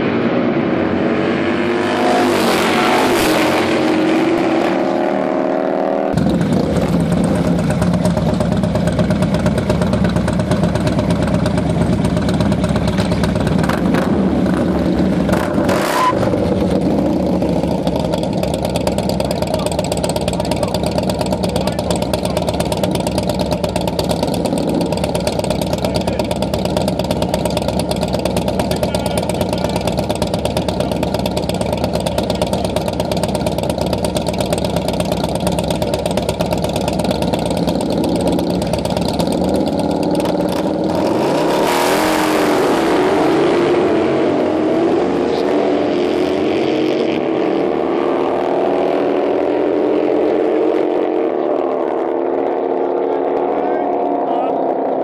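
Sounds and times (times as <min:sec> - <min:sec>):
motorcycle engine idling: 0:06.2 - 0:15.6, 0:16.3 - 0:41.0.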